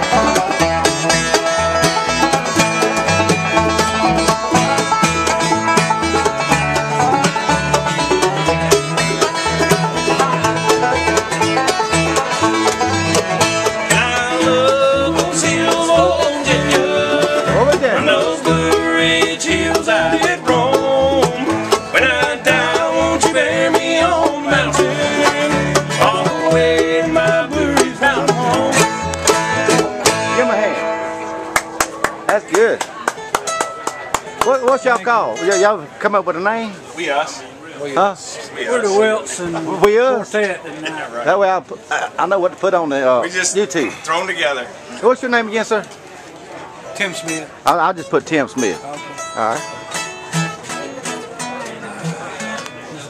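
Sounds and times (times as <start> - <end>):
bluegrass band playing: 0.0 - 53.0
guitar and banjo strums: 0.0 - 53.0.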